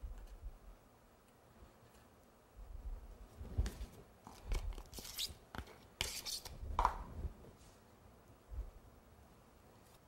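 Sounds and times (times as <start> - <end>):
icing smeared on cake board: 4.8 - 6.6.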